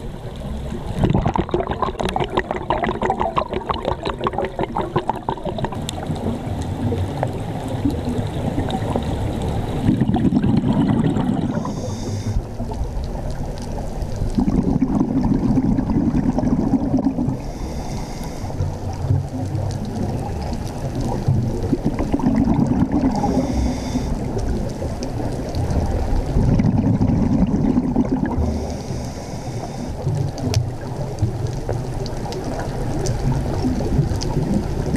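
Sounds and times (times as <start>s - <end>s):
underwater water and bubbles: 0.0s - 34.9s
higher hiss: 11.5s - 12.4s.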